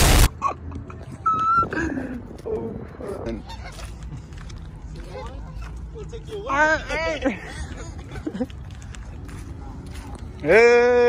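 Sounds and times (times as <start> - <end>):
loud explosion blast: 0.0 - 0.3.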